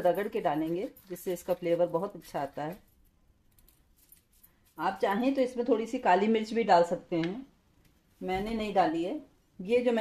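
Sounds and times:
woman's voice: 0:00.0 - 0:02.8, 0:04.8 - 0:07.5, 0:08.2 - 0:10.0
hands rubbing seeds: 0:00.0 - 0:05.4.

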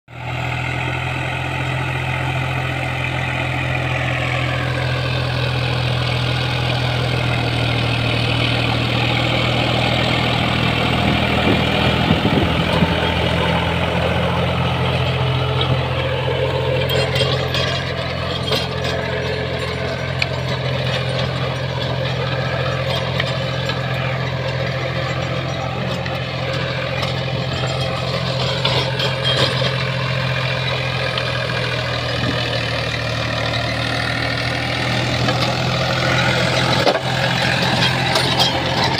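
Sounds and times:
tractor diesel engine running: 0:00.1 - 0:38.9
rotavator churning soil: 0:05.2 - 0:38.9.

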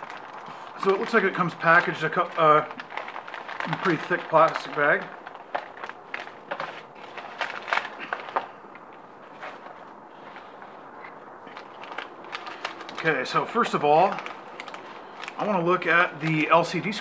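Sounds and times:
plastic bag crinkling: 0:00.0 - 0:17.0.

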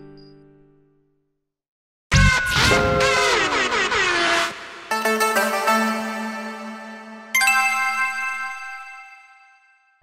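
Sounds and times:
bright chime: 0:07.3 - 0:10.0.

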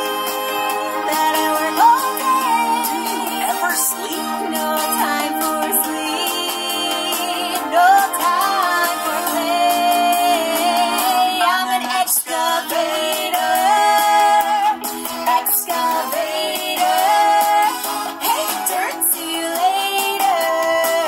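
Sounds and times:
pop song through laptop speaker: 0:00.0 - 0:21.0.

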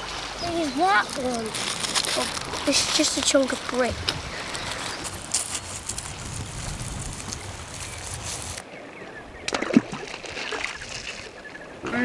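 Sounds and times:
river water rippling and lapping: 0:00.0 - 0:12.0.

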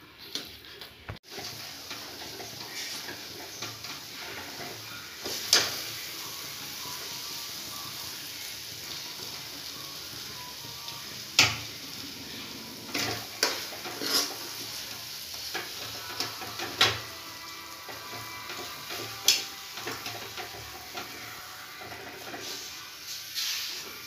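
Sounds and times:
low sizzle from pan: 0:00.0 - 0:24.0
ladle scraping and knocking on pan: 0:12.9 - 0:14.8.

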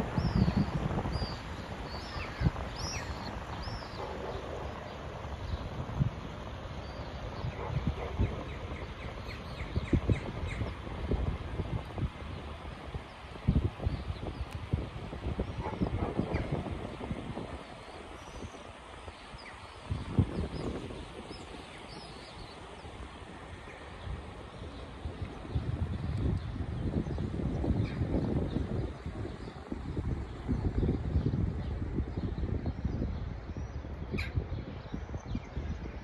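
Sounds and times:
small birds chirping: 0:00.0 - 0:05.7, 0:06.7 - 0:29.7
uneven low rumble in gusts: 0:00.0 - 0:36.0.

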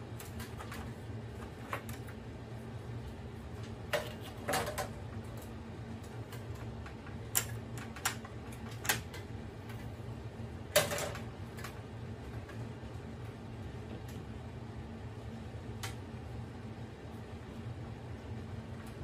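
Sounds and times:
steady low hum: 0:00.0 - 0:19.0
plastic parts clicking and knocking: 0:10.7 - 0:11.7.

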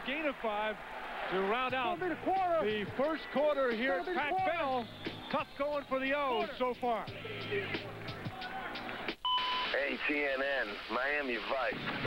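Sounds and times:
two-tone electronic beep: 0:09.2 - 0:09.8.

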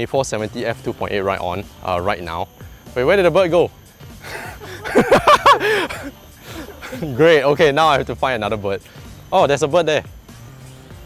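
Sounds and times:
man chuckling: 0:04.2 - 0:07.2.

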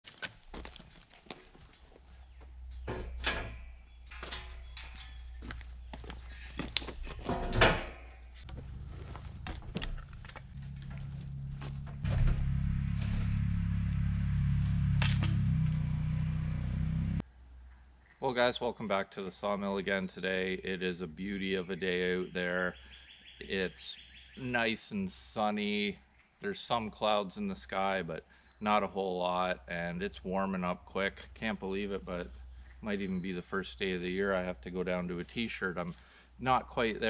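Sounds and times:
metal loading ramp clanking: 0:02.7 - 0:05.5, 0:06.2 - 0:08.1, 0:09.8 - 0:13.6
steady low drone: 0:08.5 - 0:17.2.

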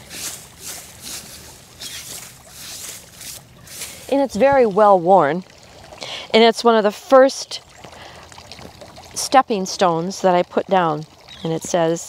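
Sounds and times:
brushing dirt off stone: 0:00.0 - 0:04.5.

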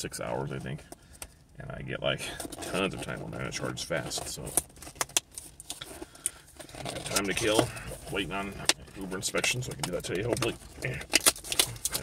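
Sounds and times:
packaging clicks and crackles: 0:04.0 - 0:12.0.

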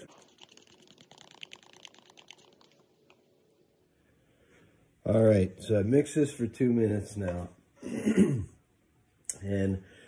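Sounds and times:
stir stick scraping plastic cup: 0:00.0 - 0:02.8.

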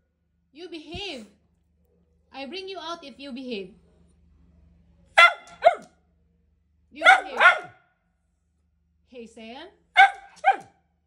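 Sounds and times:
small dog barking: 0:05.2 - 0:06.0, 0:07.0 - 0:07.8, 0:10.0 - 0:10.8.

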